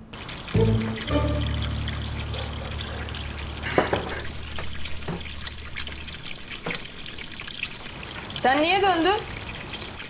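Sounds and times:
water running: 0.0 - 10.0
low background music: 0.5 - 3.6.

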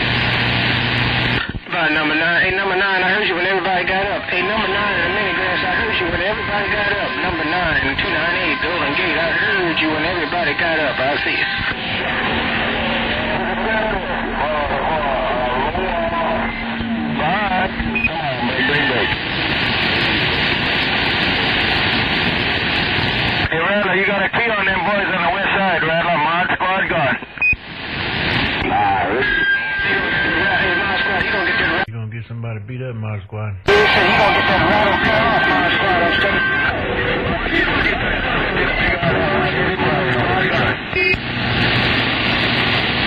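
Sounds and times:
steady low hum: 0.0 - 23.8, 29.9 - 43.0
radio hiss and static: 0.0 - 43.0.

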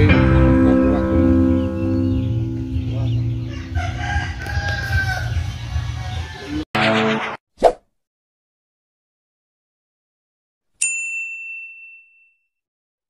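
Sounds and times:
background music: 0.0 - 5.9
rooster crowing: 3.4 - 6.6.

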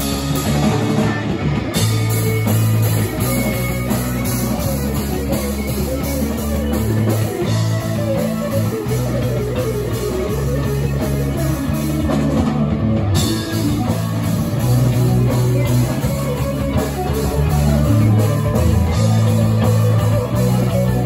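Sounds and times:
drum kit: 0.0 - 21.0
electric guitars: 0.0 - 21.0.

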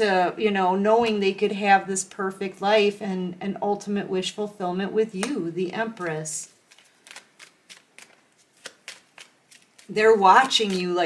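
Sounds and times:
cards being shuffled: 5.9 - 11.0.

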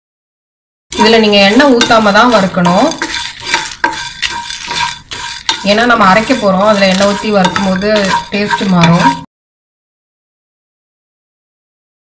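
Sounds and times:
wooden spatula scraping pan: 0.9 - 9.3.

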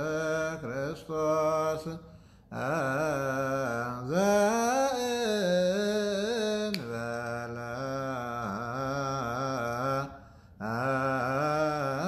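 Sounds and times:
man chanting a prayer: 0.0 - 12.0.

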